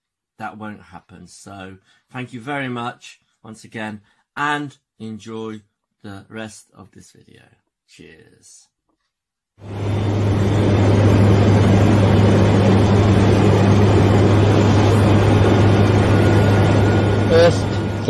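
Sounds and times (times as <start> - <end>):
aircraft piston engine drone: 9.6 - 18.0.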